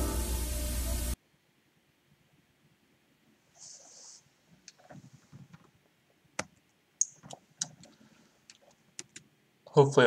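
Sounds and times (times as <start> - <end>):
computer mouse and key clicks: 6.4 - 9.3.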